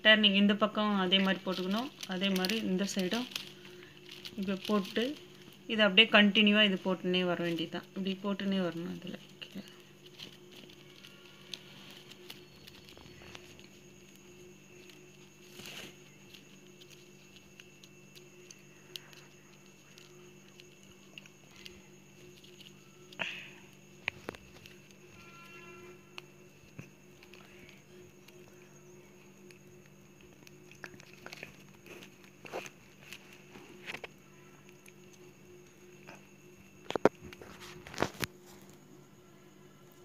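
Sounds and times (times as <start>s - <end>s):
plastic wire rustling: 0.0s - 36.2s, 36.8s - 38.8s
low steady hum: 0.0s - 40.0s.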